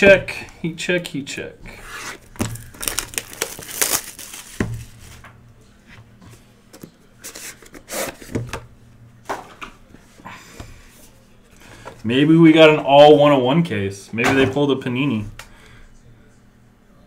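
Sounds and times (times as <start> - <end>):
packaging crinkling and tearing: 2.1 - 5.2.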